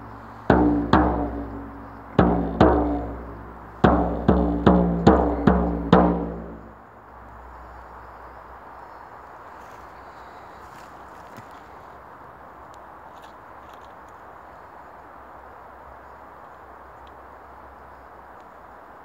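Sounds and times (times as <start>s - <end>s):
outdoor background hiss: 0.0s - 19.0s
frame drum boom: 0.5s - 6.7s
faint ticks: 12.7s - 14.3s, 16.4s - 17.2s, 18.2s - 18.7s.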